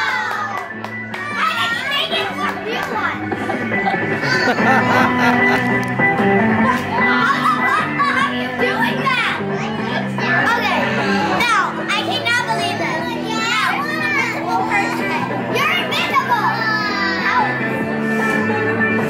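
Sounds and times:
children shouting: 0:00.0 - 0:03.3, 0:04.1 - 0:05.3, 0:06.6 - 0:17.7
background music: 0:00.0 - 0:19.0.

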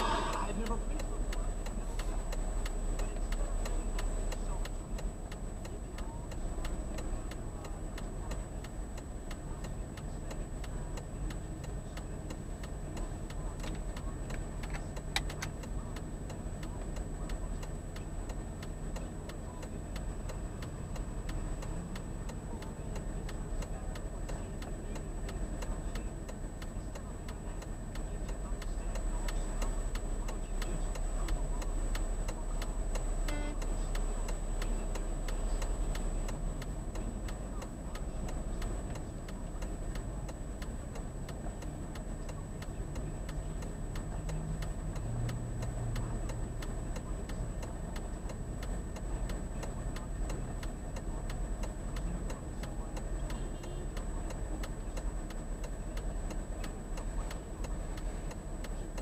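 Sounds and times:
low engine hum: 0:00.0 - 0:59.0
indicator relay clicking: 0:31.9 - 0:34.4.

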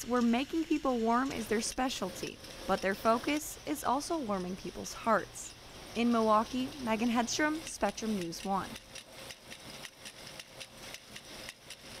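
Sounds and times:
knitting machine clattering: 0:05.9 - 0:12.0.

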